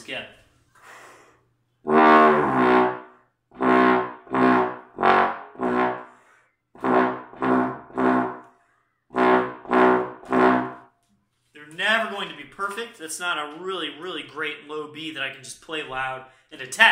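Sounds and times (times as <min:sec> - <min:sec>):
low trombone notes: 0:01.8 - 0:06.2, 0:06.8 - 0:08.4, 0:09.1 - 0:10.9.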